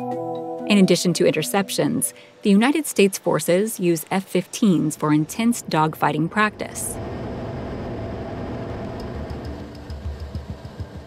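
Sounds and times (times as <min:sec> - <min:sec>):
music with ticking beat: 0:09.3 - 0:11.0.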